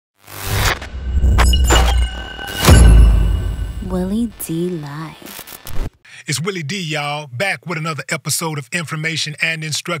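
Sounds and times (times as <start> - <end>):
crackling static bursts: 0.2 - 2.1, 3.8 - 6.0.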